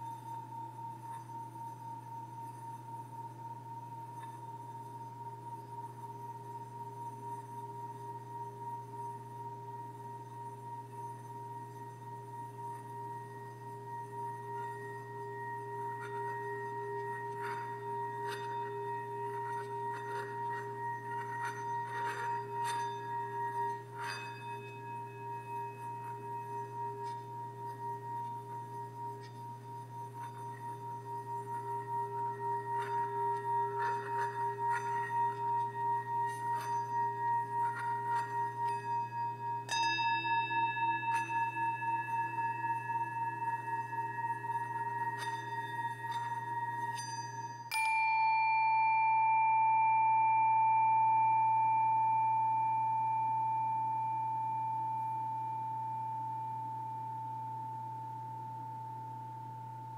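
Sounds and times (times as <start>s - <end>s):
singing bowl ringing: 0.0s - 59.9s.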